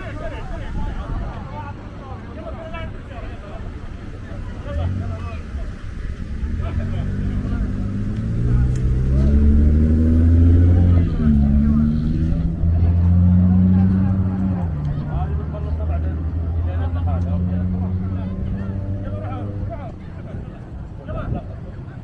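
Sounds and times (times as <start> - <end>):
vehicle engine revving: 4.5 - 20.0.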